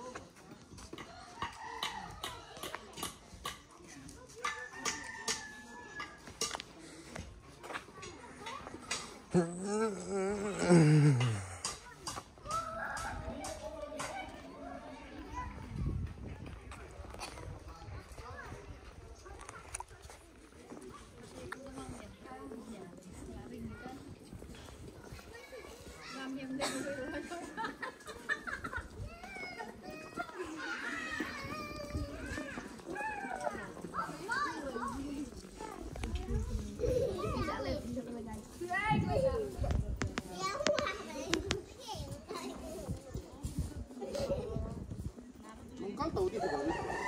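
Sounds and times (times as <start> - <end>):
people talking indistinctly: 4.2 - 30.7
background voices: 6.7 - 12.0
children shouting while playing: 12.4 - 15.7.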